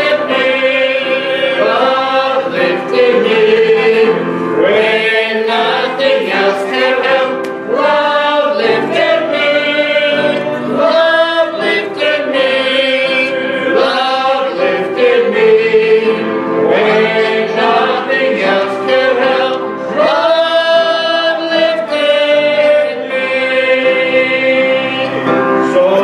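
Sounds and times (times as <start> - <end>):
congregation singing a hymn: 0.0 - 26.0.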